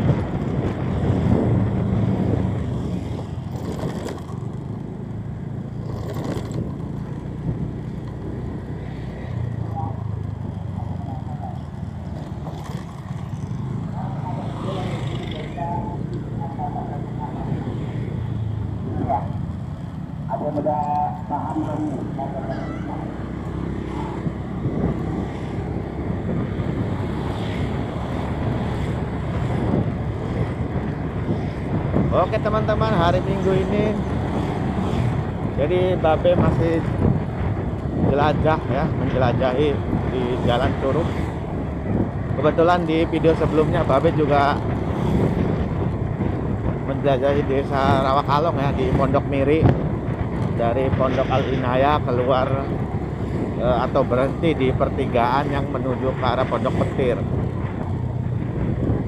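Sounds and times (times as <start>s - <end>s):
motorcycles passing: 0.0s - 59.0s
vehicle engine and tyre rumble: 0.0s - 59.0s.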